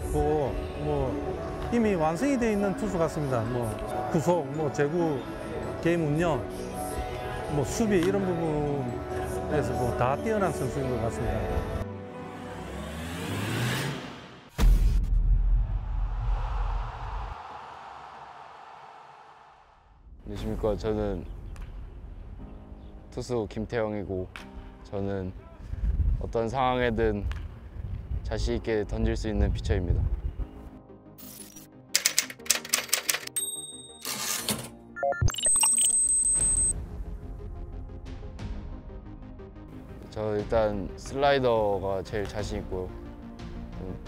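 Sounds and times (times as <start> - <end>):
faint background music: 0.0 - 12.6, 20.2 - 33.6, 34.2 - 44.0
deep bass boom: 14.6 - 17.4.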